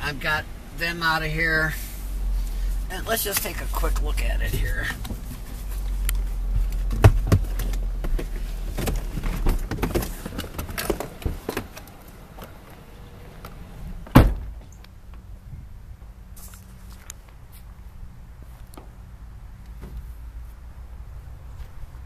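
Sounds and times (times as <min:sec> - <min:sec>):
truck door shutting thunk: 0:14.0 - 0:14.7.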